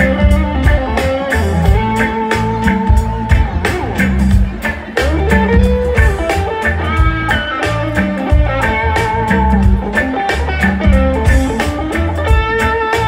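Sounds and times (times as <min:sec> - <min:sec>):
bass: 0:00.0 - 0:13.0
drum kit steady beat: 0:00.0 - 0:13.0
electric guitar lead: 0:00.0 - 0:13.0.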